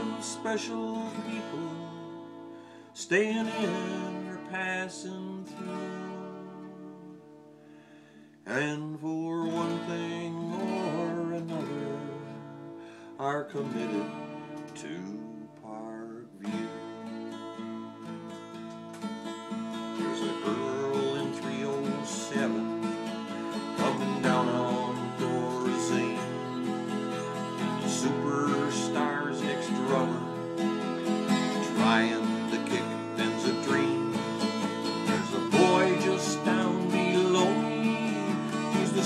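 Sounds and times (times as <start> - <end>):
acoustic guitar strumming: 0.0 - 39.0.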